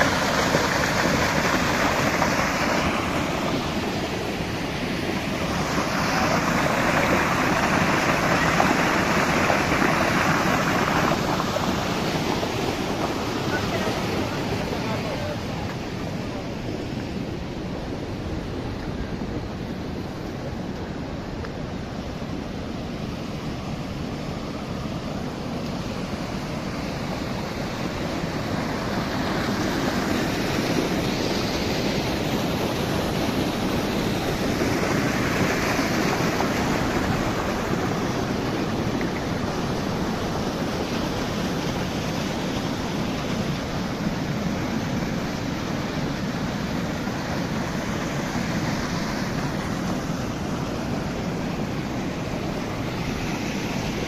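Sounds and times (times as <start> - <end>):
water rushing over weir: 0.0 - 54.0.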